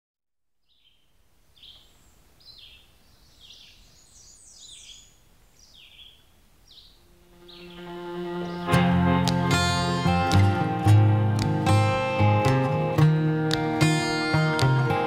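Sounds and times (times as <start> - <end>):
bird chirping faintly: 0.6 - 9.0
music: 7.3 - 15.0.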